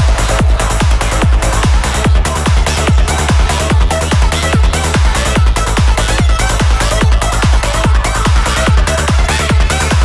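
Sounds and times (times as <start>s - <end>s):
pitch-dropping kick drum: 0.0s - 10.0s
psytrance music: 0.0s - 10.0s
rolling bassline: 0.0s - 10.0s.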